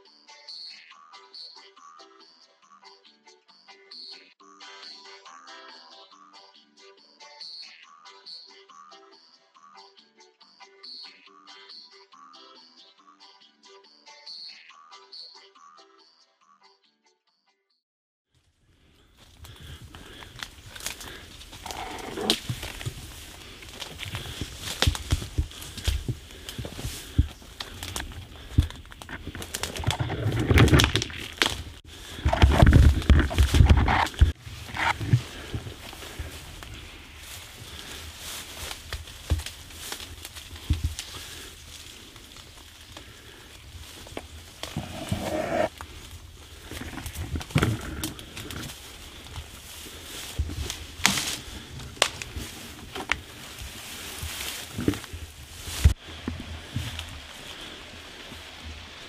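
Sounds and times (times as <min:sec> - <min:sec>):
branches scraping and brushing: 0:19.1 - 0:59.0
twigs snapping: 0:19.2 - 0:44.8, 0:45.7 - 0:56.0
footsteps on leaf litter: 0:19.2 - 0:47.5, 0:48.2 - 0:58.6.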